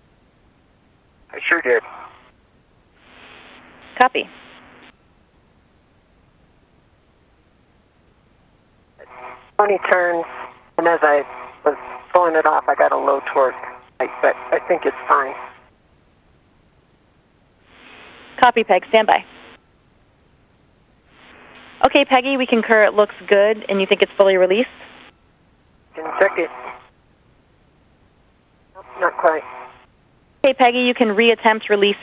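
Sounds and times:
faint low hum: 0.0 - 32.0
radio static hiss: 1.3 - 5.0, 8.9 - 19.6, 20.9 - 32.0.

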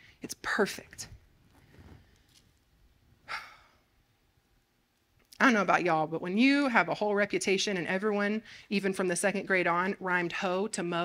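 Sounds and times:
woman sighing: 3.2 - 3.9.

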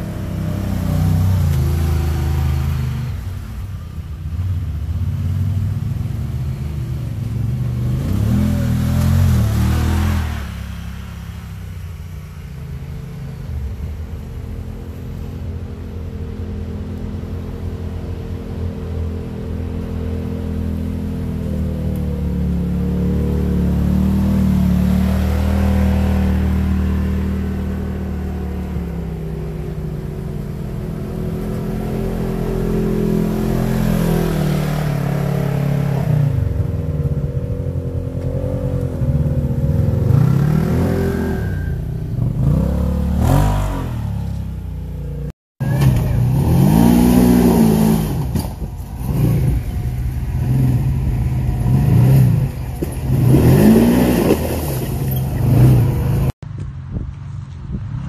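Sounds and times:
engines running at low revs: 0.0 - 58.0.

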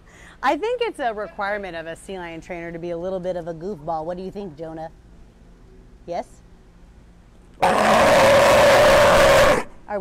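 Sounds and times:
sea lion calling: 7.6 - 9.7.

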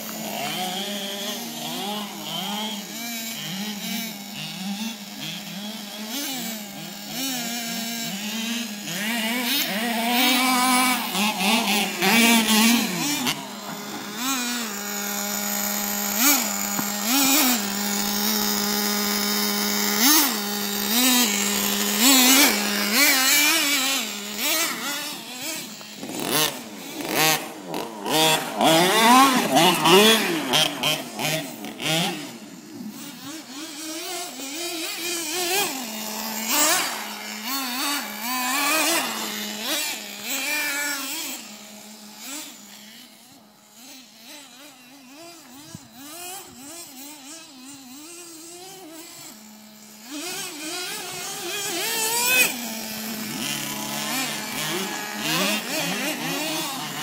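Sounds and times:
toy truck engine revving: 0.0 - 57.0.

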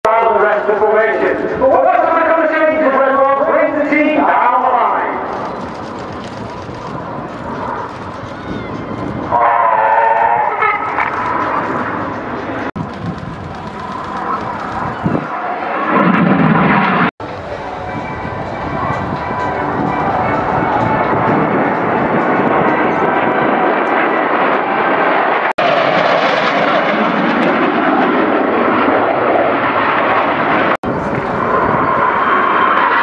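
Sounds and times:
jet roar: 0.1 - 33.0.

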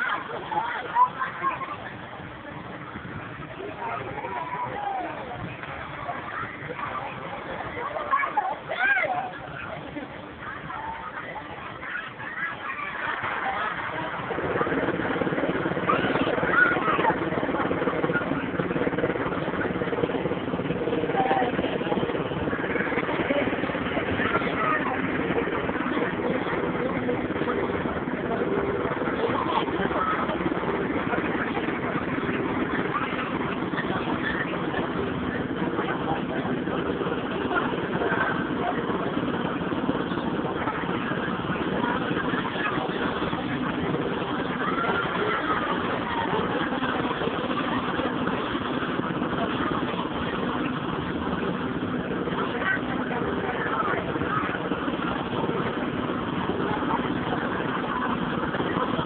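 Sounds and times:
carousel ride mechanical hum: 0.0 - 59.0
people's voices: 0.0 - 59.0.

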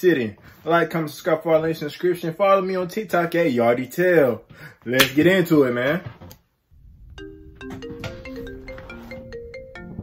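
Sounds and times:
marimba phone ringtone: 7.2 - 10.0.

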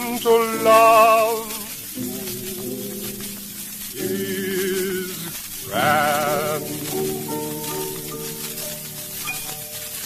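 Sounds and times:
man singing with vibrato: 0.0 - 7.3
piano: 0.0 - 10.0
record surface hiss: 0.0 - 10.0.

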